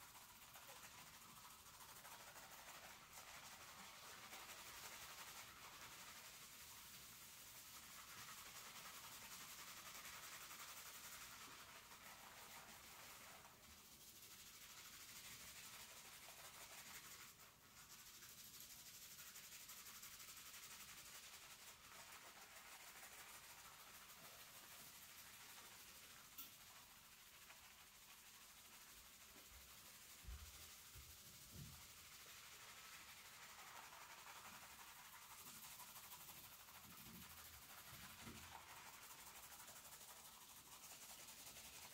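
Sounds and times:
fingertips scrubbing lathered scalp: 0.0s - 41.9s.

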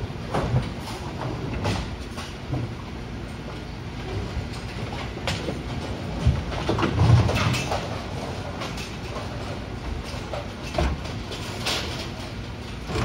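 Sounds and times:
machine clicks and clanks: 4.5s - 13.0s.

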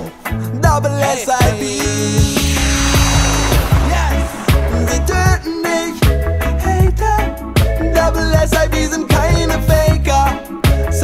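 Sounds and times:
mechanical ratcheting sweep: 1.5s - 6.0s.

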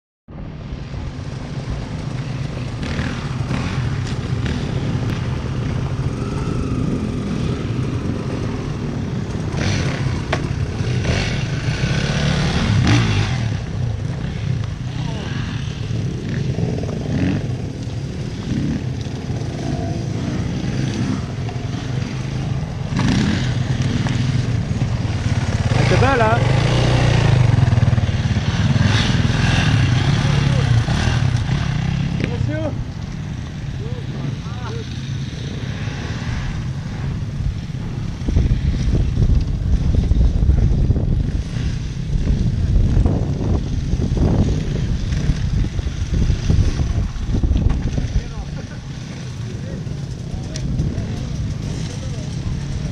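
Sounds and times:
dirt bike engines idling: 0.4s - 52.9s
voices: 14.0s - 37.0s, 46.8s - 52.9s.

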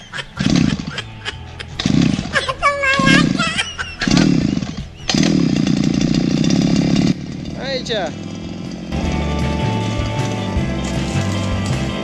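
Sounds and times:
brush cutter engine starting: 0.2s - 12.0s.

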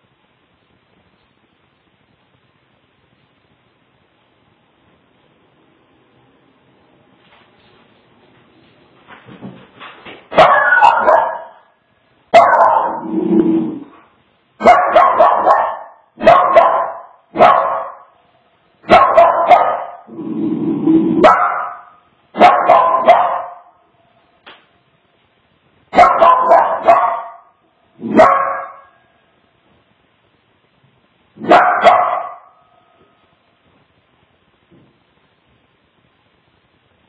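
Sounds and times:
small dog barking: 10.3s - 11.7s, 12.3s - 13.1s, 14.6s - 18.2s, 18.9s - 20.1s, 21.2s - 23.8s, 25.9s - 29.1s, 31.4s - 32.9s.

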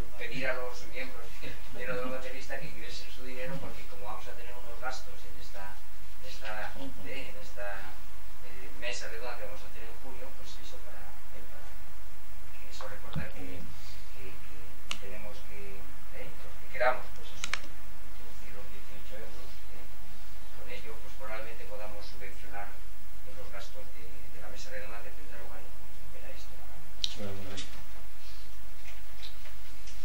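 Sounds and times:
steady low hum: 0.0s - 30.0s
lapel microphone clicks: 12.7s - 13.5s, 14.8s - 15.2s, 17.0s - 17.8s.

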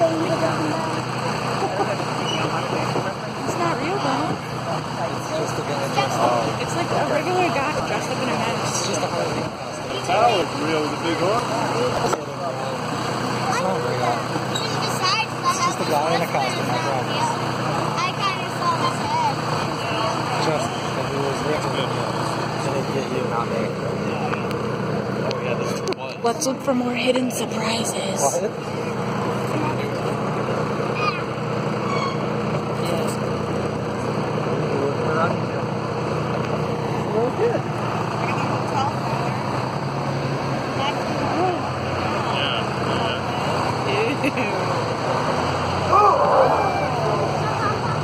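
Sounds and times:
engine droning: 0.0s - 48.0s
faint voices: 0.0s - 48.0s
riders chattering: 0.0s - 48.0s.

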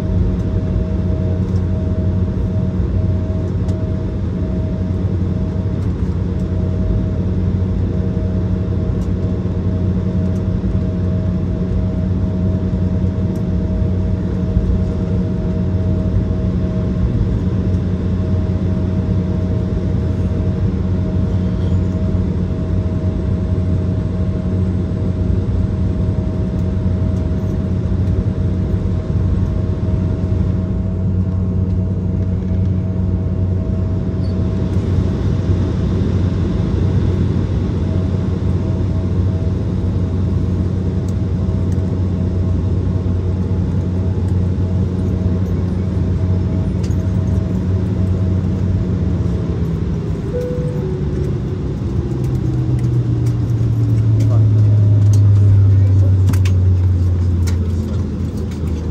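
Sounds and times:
deep drone: 0.0s - 58.9s
machinery hum with held tones: 0.0s - 58.9s.

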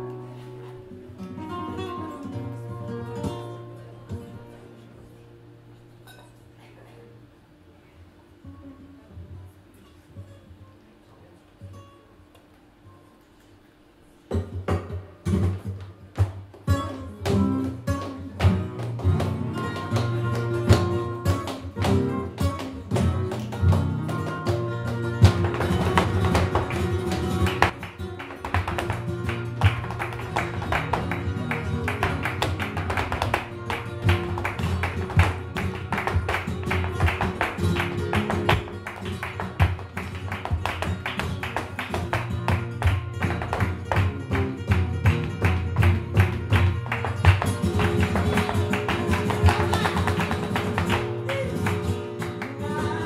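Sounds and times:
flamenco guitars strummed and picked: 0.0s - 6.7s, 8.3s - 53.0s
dancer's footwork: 14.3s - 52.6s
hand clapping: 14.3s - 53.0s.

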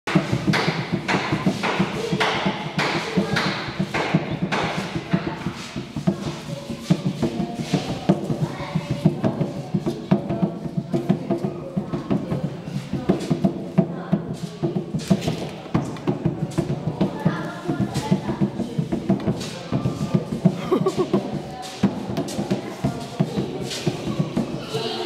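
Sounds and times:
hand drum sharp slaps: 0.1s - 24.6s.

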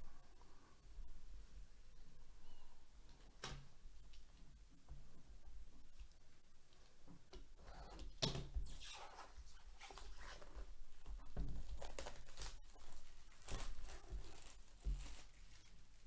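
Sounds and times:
plastic wrap tearing and crinkling: 11.5s - 16.0s.

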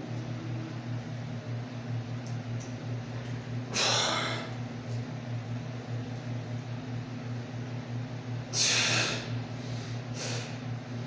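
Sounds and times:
steady low hum: 0.0s - 11.0s
man breathing out hard: 8.6s - 10.6s.

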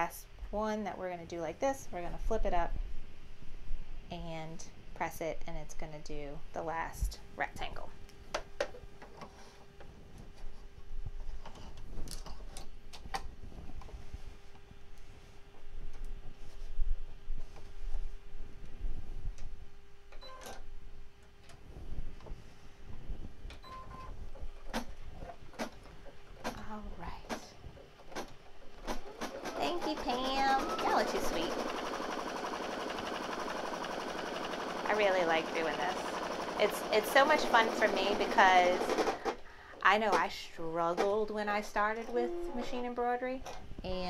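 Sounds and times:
embroidery machine whirring: 28.8s - 39.4s.

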